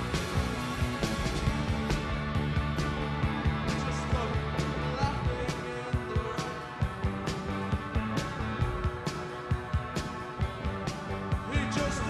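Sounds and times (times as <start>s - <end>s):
bass guitar: 0.0s - 12.0s
electric guitars: 0.0s - 12.0s
steady drumbeat: 0.0s - 12.0s.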